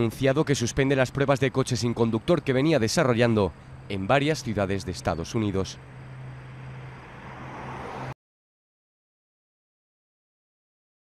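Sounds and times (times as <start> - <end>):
car driving past: 5.8 - 8.2.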